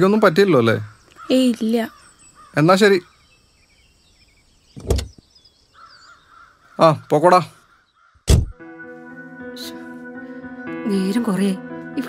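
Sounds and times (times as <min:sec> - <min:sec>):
faint birds chirping: 0:00.0 - 0:11.6
crow cawing: 0:01.1 - 0:03.2, 0:05.7 - 0:08.3
thump: 0:04.8 - 0:05.2, 0:08.3 - 0:08.6.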